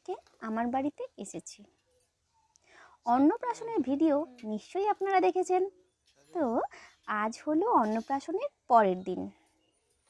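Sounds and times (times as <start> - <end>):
in-breath: 2.6 - 3.1, 6.7 - 7.0
person talking: 3.1 - 5.7.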